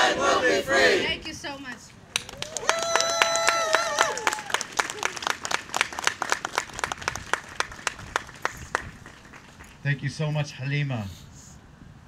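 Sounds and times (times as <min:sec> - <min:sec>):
crowd applauding: 0:02.2 - 0:09.8
long held shout: 0:02.4 - 0:04.6.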